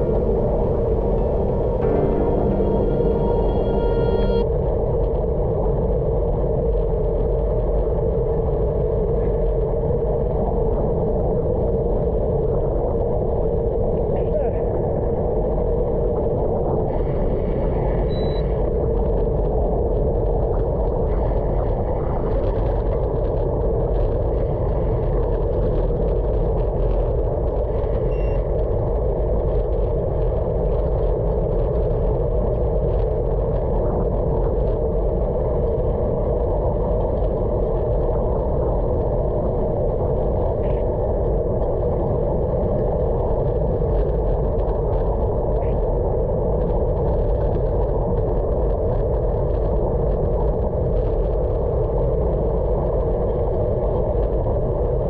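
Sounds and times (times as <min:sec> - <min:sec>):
wind rushing: 0:00.0 - 0:04.5.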